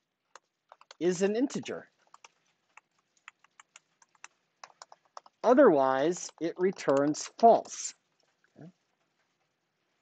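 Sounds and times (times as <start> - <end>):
typing on computer keyboard: 0.3 - 1.1, 1.9 - 8.3.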